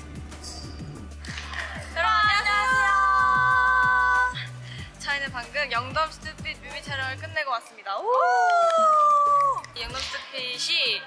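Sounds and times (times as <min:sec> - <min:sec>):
woman exclaiming: 0:02.0 - 0:04.4.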